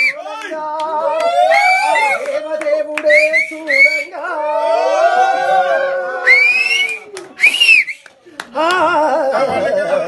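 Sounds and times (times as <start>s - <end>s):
rising whistles: 6.2s - 8.1s.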